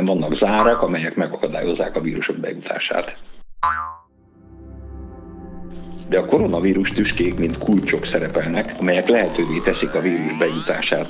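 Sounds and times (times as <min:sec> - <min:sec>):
cartoon boing: 0:00.6 - 0:01.0, 0:03.6 - 0:04.0
soft background music: 0:04.2 - 0:10.8.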